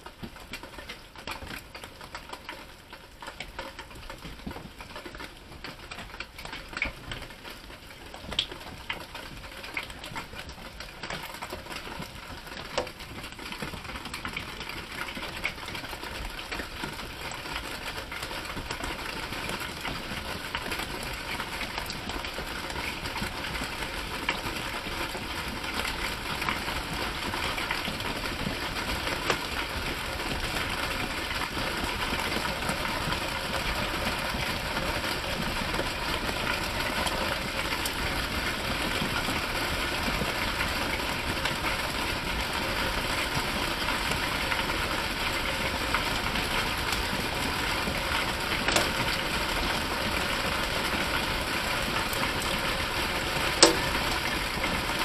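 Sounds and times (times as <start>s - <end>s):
hail and rain drumming: 0.0s - 55.0s.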